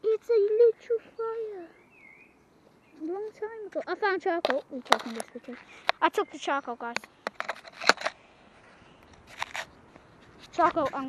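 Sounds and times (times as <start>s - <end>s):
camera handling clicks and knocks: 4.4s - 6.0s, 6.9s - 8.2s, 9.0s - 9.7s.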